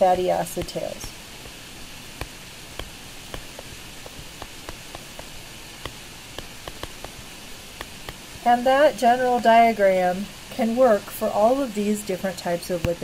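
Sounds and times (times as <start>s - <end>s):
recording hiss: 0.0s - 13.0s
stylus tapping on tablet: 2.2s - 7.2s, 7.8s - 8.2s.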